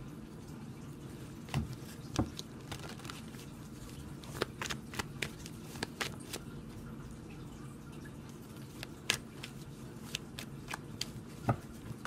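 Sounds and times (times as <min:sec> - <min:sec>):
cards being shuffled: 0:01.5 - 0:06.5, 0:08.6 - 0:12.0.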